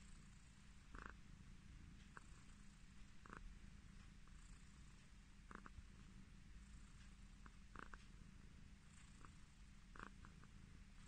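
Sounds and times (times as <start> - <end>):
cat purring: 0.0 - 11.0
faint light ticks: 1.9 - 11.0.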